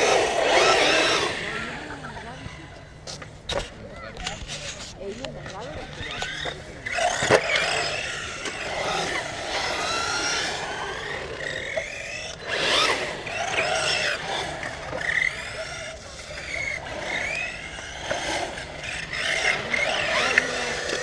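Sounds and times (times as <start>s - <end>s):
rc car electric motor whining: 0.0s - 2.8s, 4.2s - 21.0s.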